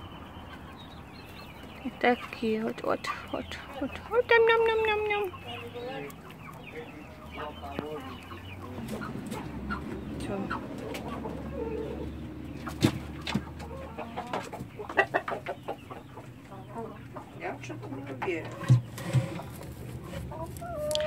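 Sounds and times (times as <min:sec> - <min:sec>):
chickens clucking: 0:00.0 - 0:21.0.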